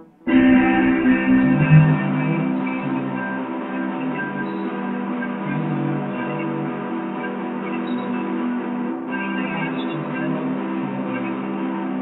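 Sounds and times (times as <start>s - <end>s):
guitar playing ringing chords: 0.0s - 12.0s.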